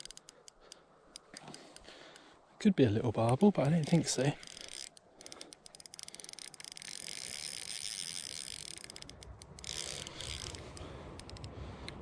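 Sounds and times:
fishing reel clicking: 0:00.0 - 0:01.9, 0:03.3 - 0:12.0.

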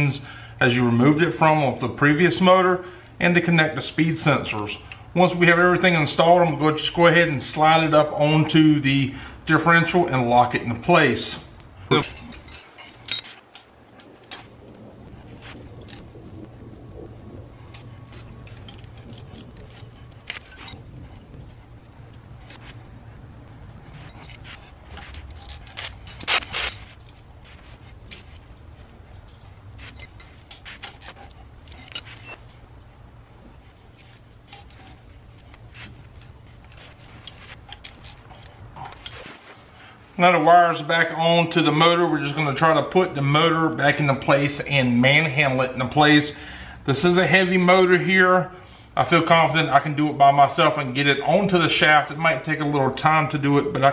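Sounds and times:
low steady hum: 0:00.0 - 0:53.9
metallic clicks and clinks: 0:11.9 - 0:14.6, 0:17.7 - 0:22.7, 0:24.0 - 0:32.5, 0:36.2 - 0:39.4.

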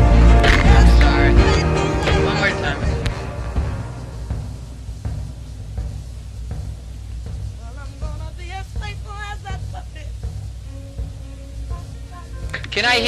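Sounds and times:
low rumble of instruments: 0:00.0 - 0:13.0.

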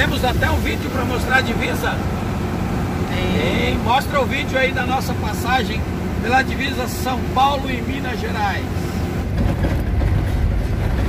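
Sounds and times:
diesel engine drone: 0:00.0 - 0:11.0
tyre and road noise: 0:00.0 - 0:11.0.

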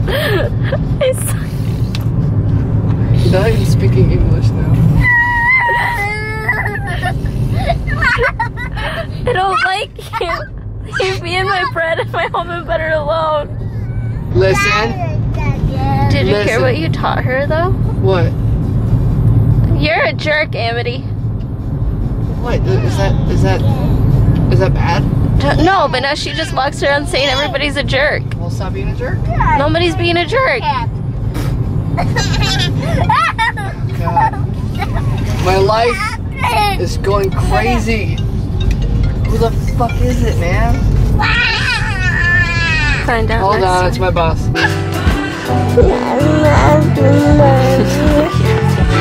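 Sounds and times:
car road and engine rumble: 0:00.0 - 0:49.0
high-pitched voice: 0:45.8 - 0:49.0.

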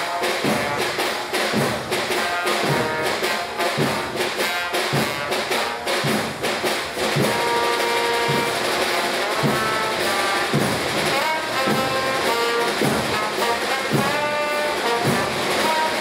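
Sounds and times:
brass band playing: 0:00.0 - 0:16.0
drum strokes: 0:00.0 - 0:16.0.

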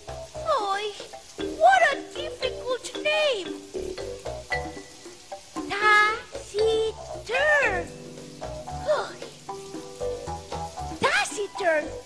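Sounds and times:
low bass notes: 0:00.0 - 0:00.5, 0:06.3 - 0:11.0
music track: 0:00.0 - 0:12.0.

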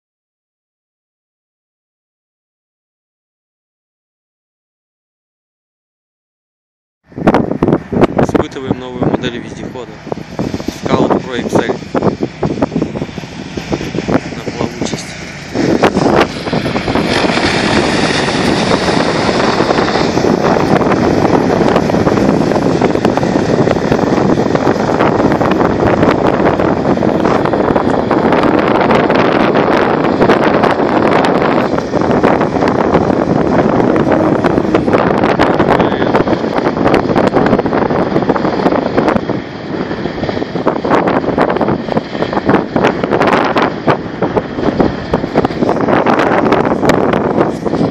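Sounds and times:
wind on microphone: 0:07.0 - 0:47.9
vehicle engine running: 0:07.1 - 0:47.9
wheels churning water: 0:07.1 - 0:47.9.

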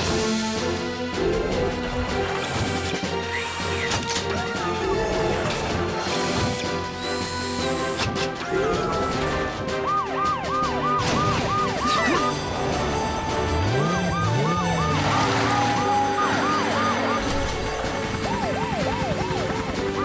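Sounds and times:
upbeat background music: 0:00.0 - 0:20.0
siren warbling: 0:08.5 - 0:20.0.

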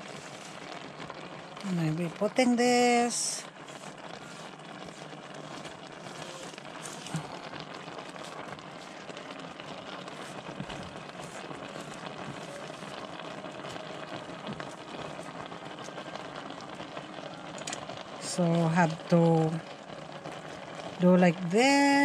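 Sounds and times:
leaves rustling into pot: 0:00.0 - 0:16.8
broth bubbling in a pot: 0:00.0 - 0:22.0.

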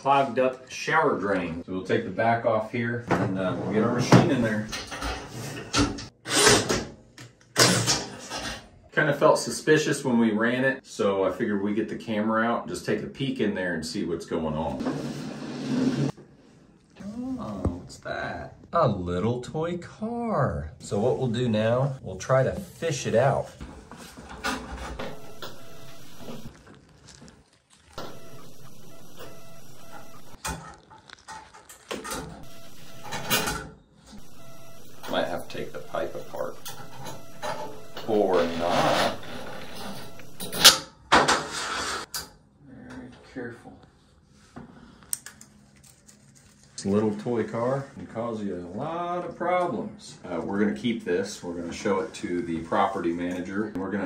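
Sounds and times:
clicks: 0:25.0 - 0:26.5, 0:28.0 - 0:30.4, 0:34.2 - 0:40.6.

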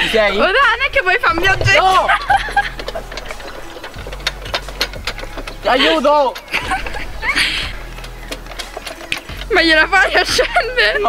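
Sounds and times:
low hum: 0:00.8 - 0:05.7
wooden boards clattering: 0:00.8 - 0:10.3.

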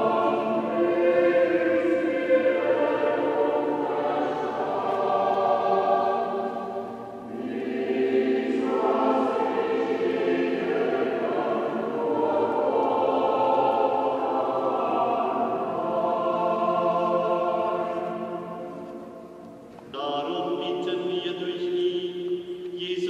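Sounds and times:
choir singing a hymn: 0:00.0 - 0:23.0.

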